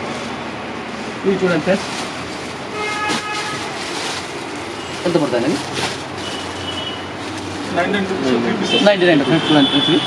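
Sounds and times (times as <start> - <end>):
plastic packaging rustling: 0.0 - 8.2
steady background noise: 0.0 - 10.0.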